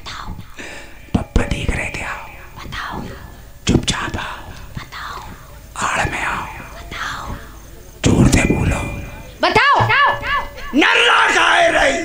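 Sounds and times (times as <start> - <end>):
sharp low thumps: 1.1 - 10.3
woman whispering: 1.2 - 7.6.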